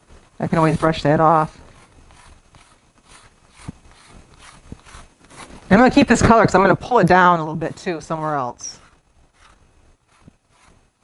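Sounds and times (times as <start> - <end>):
pastel stick rubbing on paper: 0.5 - 11.0.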